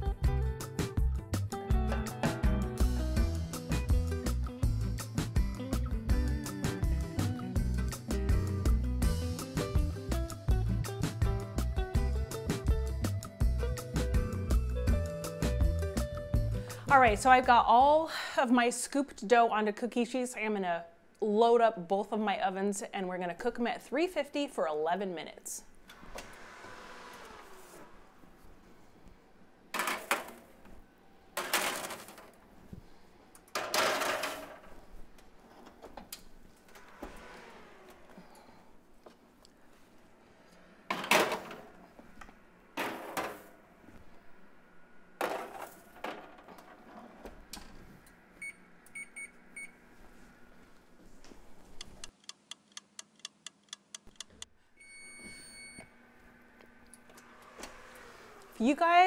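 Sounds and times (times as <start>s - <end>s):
metal trays clattering onto oven racks: 33.5s - 34.8s
oven doors shutting: 35.8s - 38.1s
oven keypad beeps: 48.4s - 49.8s, 54.8s - 55.9s.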